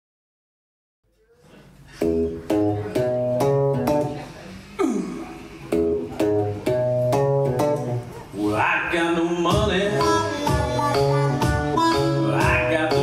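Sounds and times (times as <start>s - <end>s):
blues harmonica: 9.9s - 13.0s.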